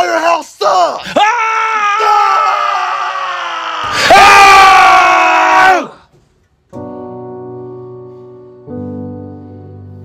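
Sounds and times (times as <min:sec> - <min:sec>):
man screaming in anger: 0:00.0 - 0:06.0.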